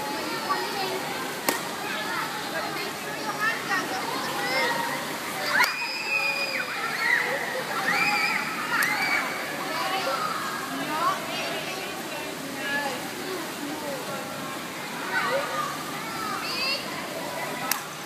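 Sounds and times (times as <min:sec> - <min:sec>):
water splashing: 0:00.0 - 0:18.0
children calling out: 0:03.8 - 0:10.8.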